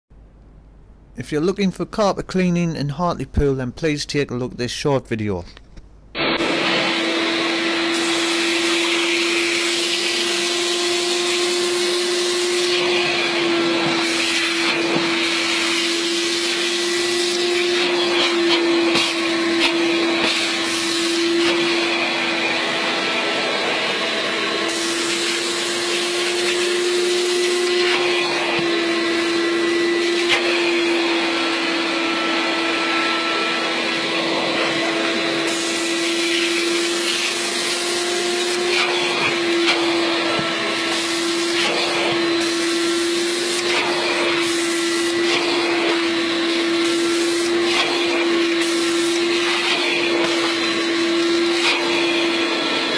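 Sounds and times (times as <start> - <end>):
vacuum machine humming: 6.1 - 52.9.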